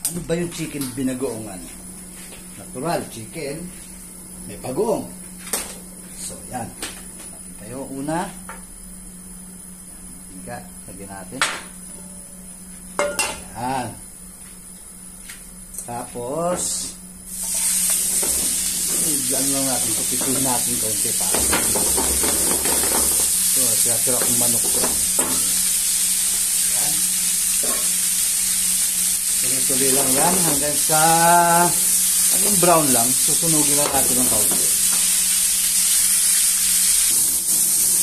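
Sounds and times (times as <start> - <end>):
steady low hum: 0.0 - 36.2
chicken sizzling in hot oil: 17.3 - 38.0
cookware knocking on gas range: 21.3 - 23.2.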